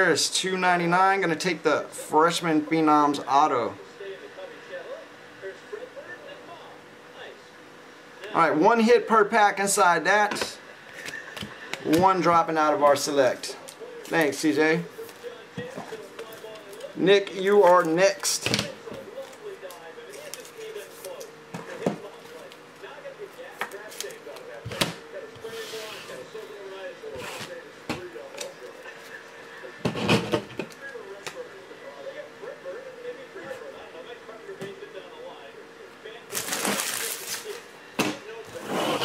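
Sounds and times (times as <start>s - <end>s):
foil card packs rustling: 12.9s - 22.6s, 23.5s - 24.6s, 36.3s - 37.7s.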